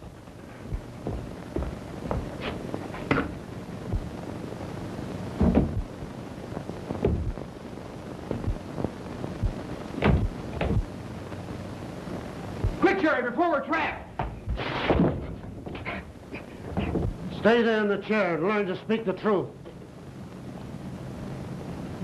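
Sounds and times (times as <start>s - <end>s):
film hiss: 0.0s - 22.0s
knocks and thuds: 5.4s - 5.9s, 7.0s - 7.4s, 8.3s - 8.6s, 9.4s - 10.9s, 16.7s - 17.2s.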